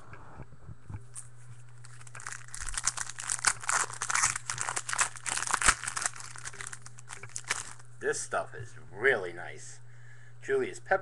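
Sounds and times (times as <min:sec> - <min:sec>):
wrapper being torn and crinkled: 0:01.8 - 0:07.9.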